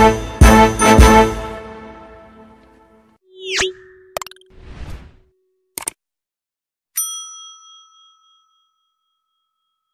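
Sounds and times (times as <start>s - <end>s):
bright bell ding: 7.0s - 9.8s.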